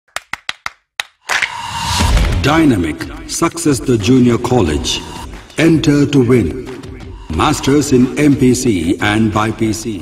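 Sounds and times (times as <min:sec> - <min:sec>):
sharp clap-like clicks: 0:00.1 - 0:02.4
loud whoosh: 0:01.4 - 0:02.6.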